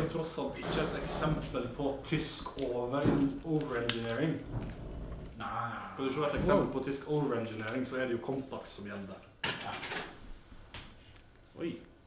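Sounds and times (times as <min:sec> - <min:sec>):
scraping slide: 0:00.6 - 0:01.6.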